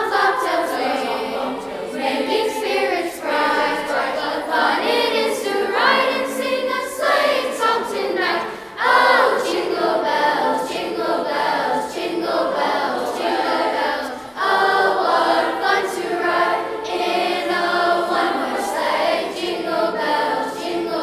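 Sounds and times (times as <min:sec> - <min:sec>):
youth choir singing carols: 0:00.0 - 0:21.0.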